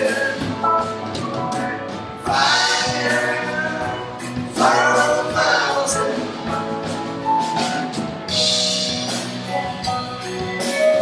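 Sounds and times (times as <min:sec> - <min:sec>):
voices singing together: 0:00.0 - 0:06.7
drums: 0:00.0 - 0:11.0
electric guitars: 0:00.0 - 0:11.0.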